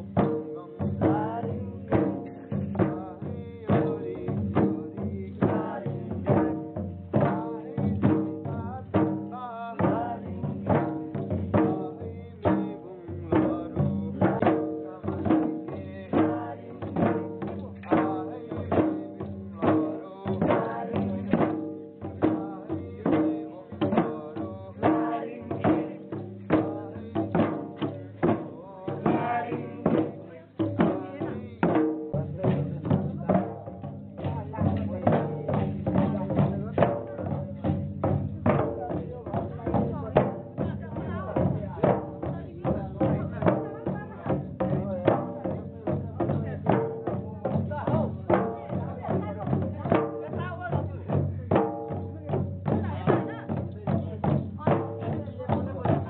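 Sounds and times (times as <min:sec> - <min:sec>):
barrel drums beaten in rhythm: 0:00.0 - 0:56.0.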